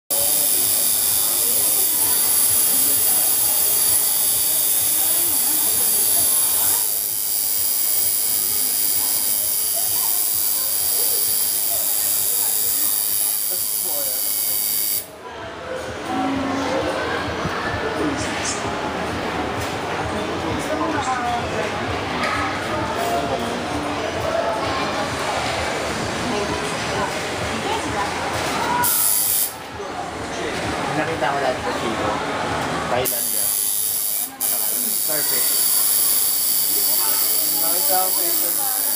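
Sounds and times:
spray bottle spritz: 0.1 - 15.1, 28.8 - 29.6, 33.1 - 38.9
faint voices: 0.1 - 38.9.

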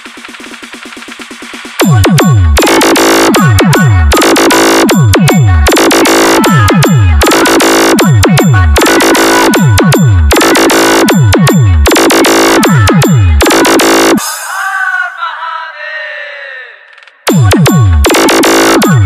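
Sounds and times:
high synth hits: 1.8 - 14.5, 17.3 - 19.0.

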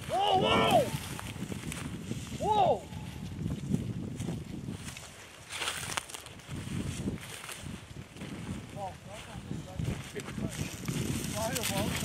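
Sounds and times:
person calling to a dog: 0.0 - 1.0
footsteps through dry grass: 0.0 - 12.0.

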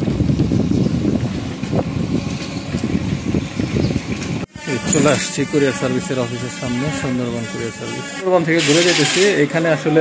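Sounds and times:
cycle rickshaw rumbling and rattling: 0.0 - 10.0
man speaking: 4.6 - 10.0.

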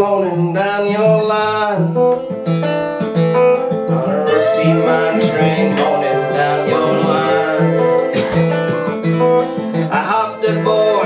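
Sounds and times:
acoustic band playing: 0.0 - 11.0.

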